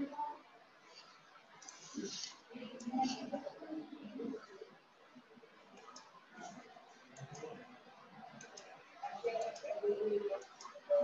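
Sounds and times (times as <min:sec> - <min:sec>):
computer mouse clicking: 0:01.6 - 0:02.9, 0:05.7 - 0:06.2, 0:07.2 - 0:07.5, 0:08.4 - 0:08.7, 0:09.3 - 0:09.7, 0:10.4 - 0:10.8.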